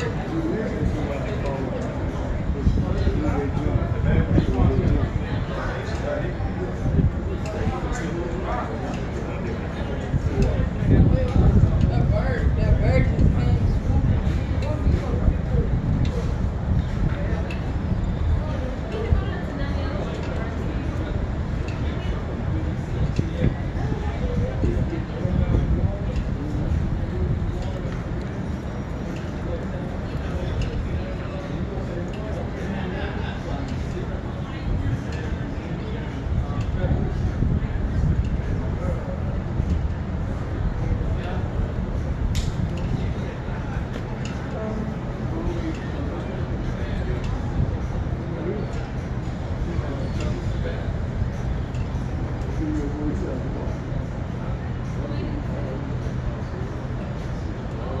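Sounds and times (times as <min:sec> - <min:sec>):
faint indistinct voices: 0:00.0 - 0:58.0
people talking: 0:00.0 - 0:58.0.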